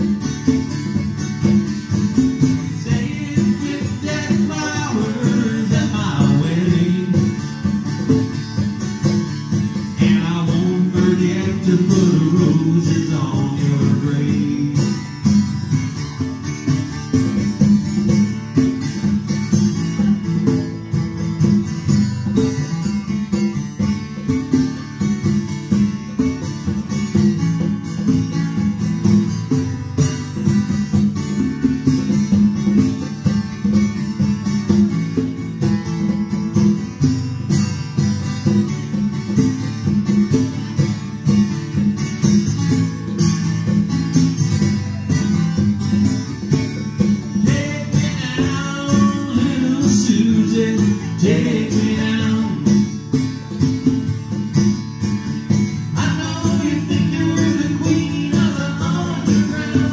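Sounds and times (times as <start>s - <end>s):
acoustic guitar playing: 0.0s - 59.9s
congas drumming: 0.0s - 59.9s
man singing: 2.6s - 7.6s, 9.9s - 15.2s, 47.4s - 53.0s, 55.9s - 59.9s.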